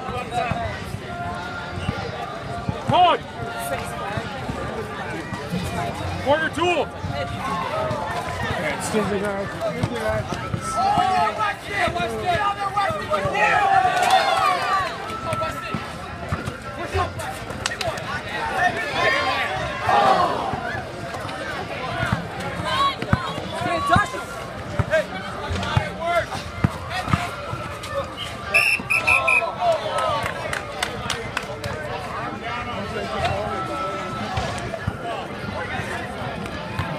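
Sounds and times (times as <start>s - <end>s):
crowd chatter and shouts: 0.0s - 36.9s.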